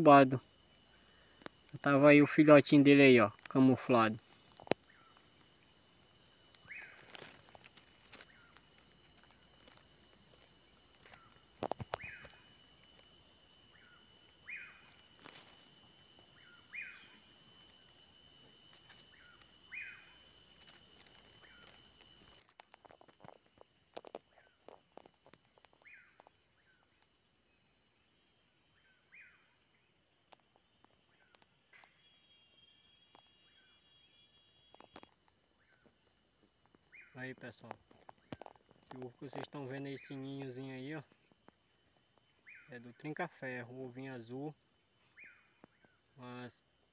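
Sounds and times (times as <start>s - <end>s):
crickets chorus: 0.0s - 46.9s.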